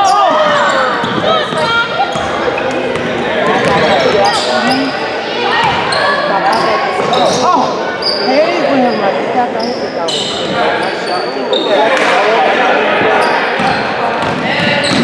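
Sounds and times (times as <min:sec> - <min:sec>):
sneakers squeaking: 0:00.0 - 0:12.3, 0:12.9 - 0:15.0
people talking and calling: 0:00.0 - 0:15.0.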